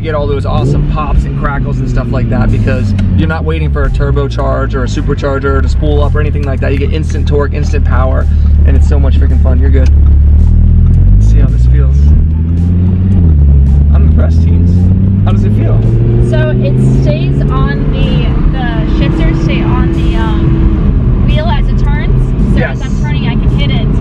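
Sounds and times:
sports car engine accelerating: 0.0 - 24.0.

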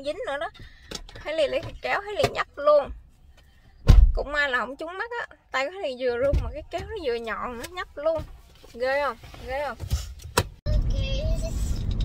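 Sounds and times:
road and engine rumble: 0.0 - 12.0.

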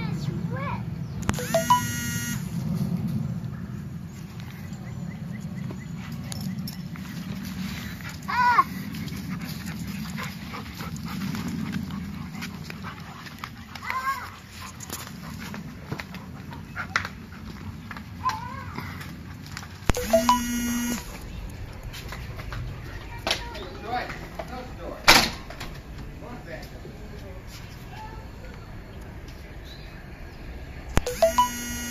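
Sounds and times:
loud steady tone: 1.3 - 2.6, 19.9 - 21.2, 31.0 - 31.9.

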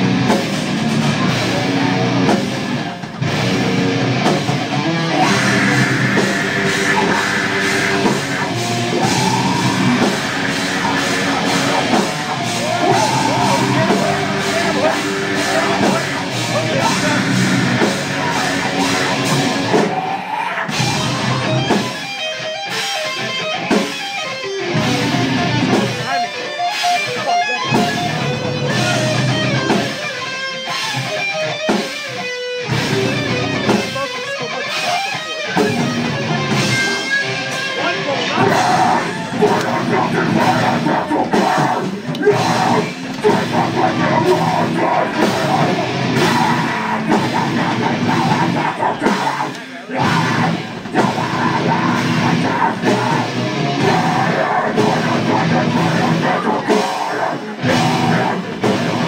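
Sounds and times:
deathcore band playing live: 0.0 - 59.0
picked guitar notes: 0.0 - 59.0
pounding drum kit: 0.0 - 59.0
vocalist screaming: 5.0 - 22.1, 37.8 - 59.0.

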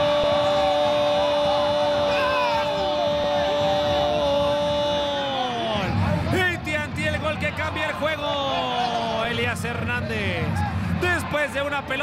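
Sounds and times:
excited shouting: 0.0 - 5.8.

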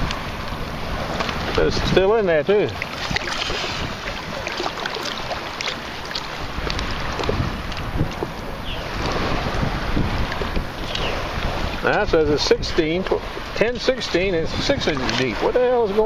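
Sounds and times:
seawater sloshing and splashing: 0.0 - 16.0
wind on microphone: 0.0 - 16.0.

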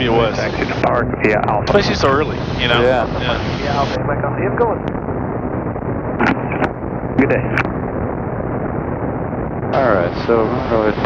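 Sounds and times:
aircraft engines droning: 0.0 - 11.0
intercom hum: 0.0 - 11.0.

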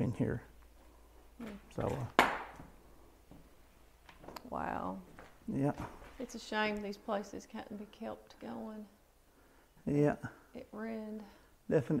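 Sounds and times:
sharp knock: 2.2 - 2.6.

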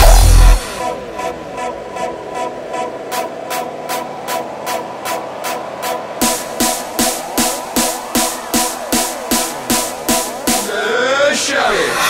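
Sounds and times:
held synth tone: 6.2 - 10.8
rapid high percussion ticking: 6.2 - 10.9.

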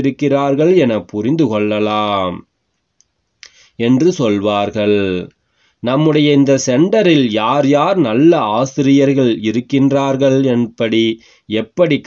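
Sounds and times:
man speaking: 0.0 - 2.5, 3.5 - 12.0
faint click: 2.7 - 3.6.

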